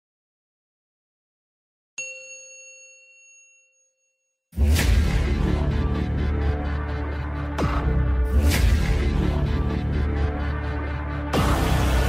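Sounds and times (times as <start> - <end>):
bell-like chime: 2.0 - 4.6.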